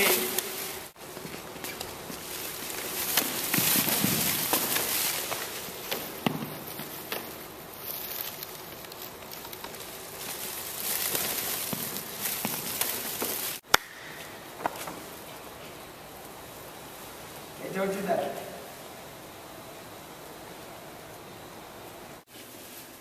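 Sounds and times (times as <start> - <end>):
background hiss: 0.0 - 23.0.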